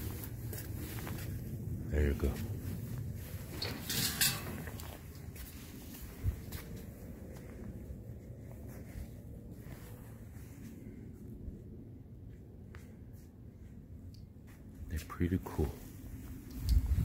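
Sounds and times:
footsteps: 0.0 - 10.9
low rumble: 0.0 - 14.9, 15.8 - 17.0
faint hum: 0.0 - 17.0.

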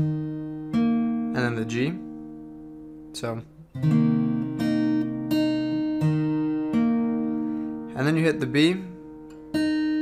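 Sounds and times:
acoustic guitar notes plucked: 0.0 - 10.0.

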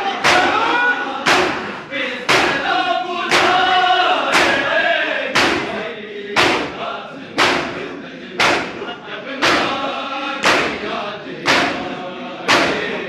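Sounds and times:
men chanting: 0.0 - 13.0
men slapping chests in unison: 0.0 - 13.0.

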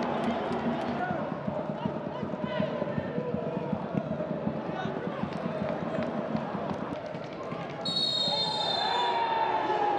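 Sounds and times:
stadium noise: 0.0 - 9.9
referee's whistle blast: 7.9 - 9.2.

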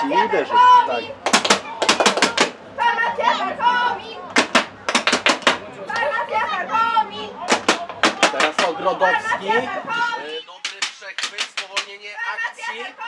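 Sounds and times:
raised voices: 0.0 - 4.8, 5.6 - 10.7, 12.0 - 13.0
sharp cracks: 4.4 - 5.6, 7.5 - 8.8, 10.6 - 12.0.

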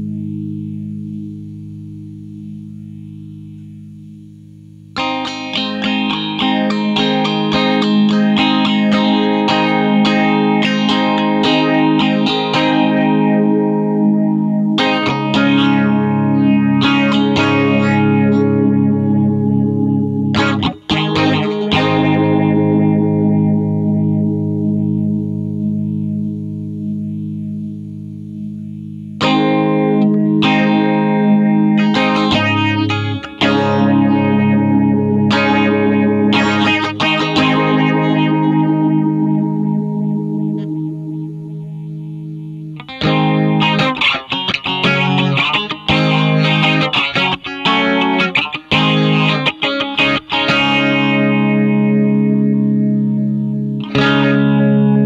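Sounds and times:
electric guitar with phaser effect: 0.0 - 55.0.

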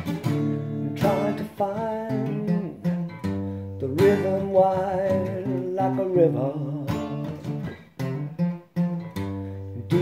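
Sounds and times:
acoustic guitar strumming chords: 0.0 - 10.0.

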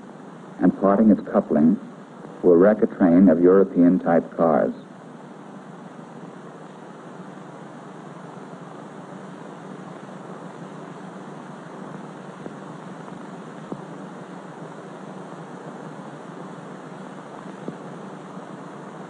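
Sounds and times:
film soundtrack hiss: 0.0 - 19.0.

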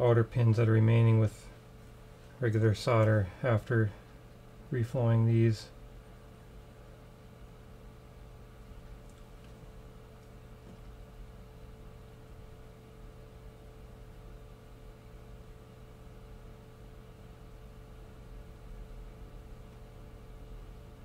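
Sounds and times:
faint constant tone: 0.0 - 21.0
low electrical hum: 0.0 - 21.0.

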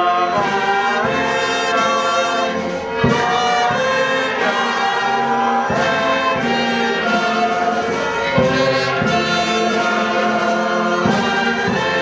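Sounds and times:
brass band playing: 0.0 - 12.0.

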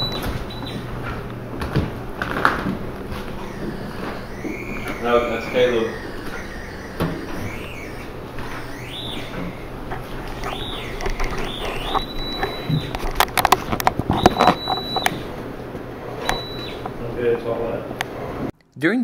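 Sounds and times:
rapid clicks: 0.0 - 17.0
meter tone gliding in pitch: 0.0 - 17.6.

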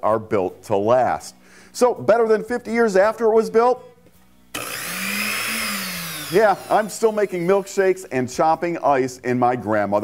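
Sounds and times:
blender motor whine: 4.5 - 8.1.

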